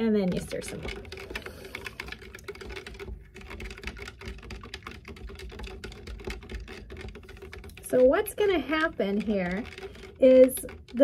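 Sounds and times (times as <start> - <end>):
stick scraping a plastic cup: 0.2 - 11.0.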